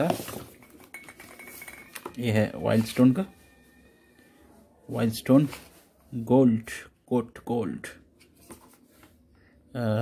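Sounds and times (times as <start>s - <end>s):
box clinking on stone floor: 0.1s - 2.2s.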